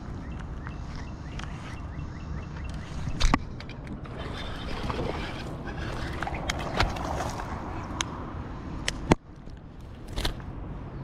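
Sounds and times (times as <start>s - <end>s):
water splashing against kayak: 4.1s - 7.9s.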